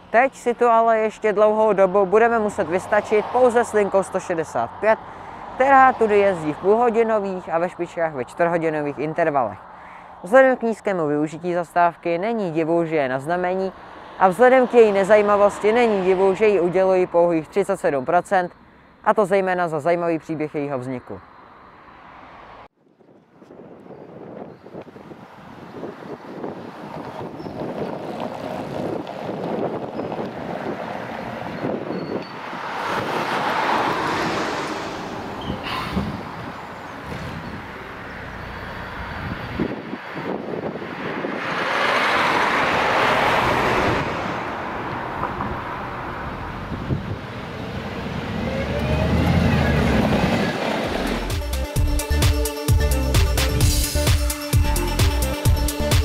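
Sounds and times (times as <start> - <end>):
vehicles passing with tyre noise: 0.0 - 56.0
bus diesel engine: 25.2 - 56.0.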